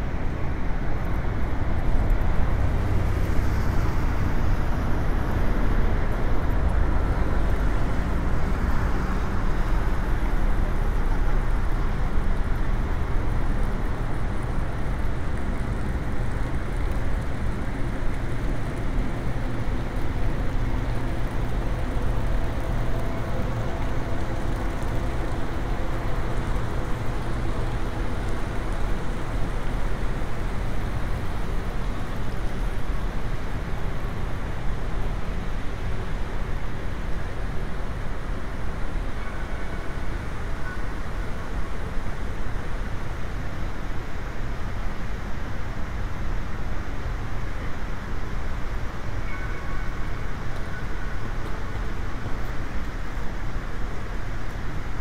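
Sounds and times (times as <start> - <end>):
faint steady hums: 0.0 - 55.0
low rumble of road traffic: 0.0 - 55.0.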